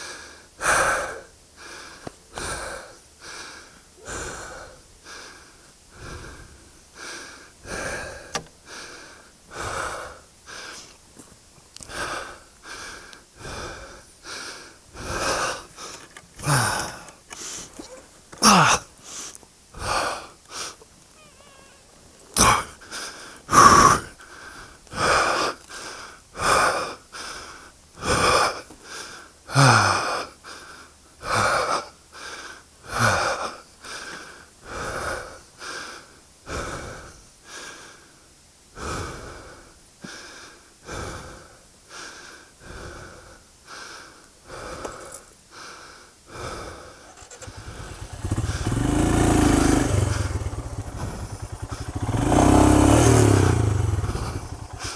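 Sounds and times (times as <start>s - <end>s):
man breathing hard: 0.0s - 11.0s, 11.8s - 17.8s, 18.4s - 20.8s, 21.8s - 54.9s
groan-like voice: 17.8s - 18.8s, 21.2s - 22.8s.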